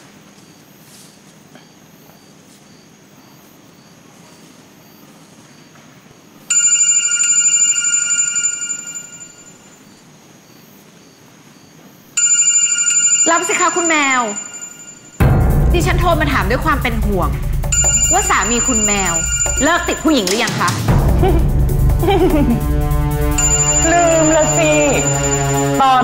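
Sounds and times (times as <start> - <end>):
phone ringing: 6.5 - 9.9, 12.2 - 15.2, 17.7 - 20.9, 23.2 - 26.0.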